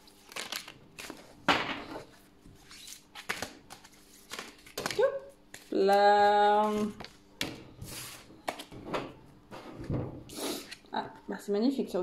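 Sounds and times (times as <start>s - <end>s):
cards tapping and rustling: 2.7s - 5.7s.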